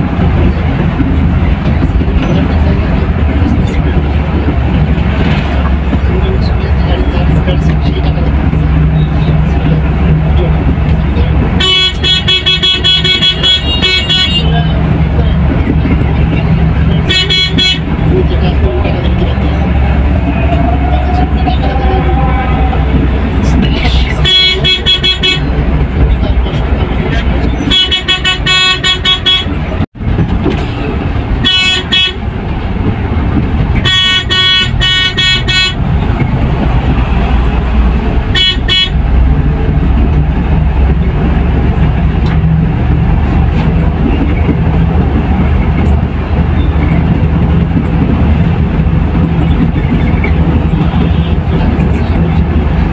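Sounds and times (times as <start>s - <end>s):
diesel engine drone: 0.0s - 52.9s
road noise: 0.0s - 52.9s
coach horn beeping: 11.2s - 14.9s, 16.8s - 18.0s, 19.3s - 23.0s, 23.8s - 25.6s, 27.1s - 29.8s, 31.4s - 32.3s, 33.8s - 36.0s, 38.3s - 39.1s.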